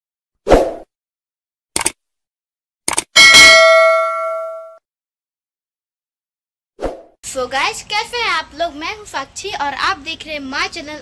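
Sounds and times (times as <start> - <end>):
quick double clicks: 1.8 - 2.0, 2.9 - 3.1
bright bell-like ding: 3.2 - 4.8.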